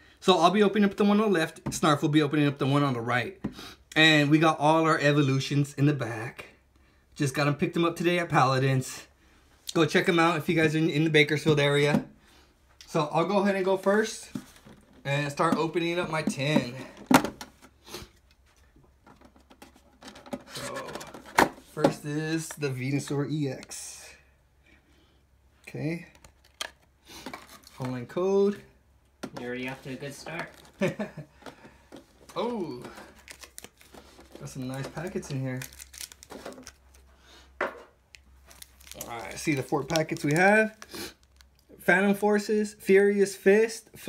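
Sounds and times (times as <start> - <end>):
quiet handling of packs: 29.3 - 41.8.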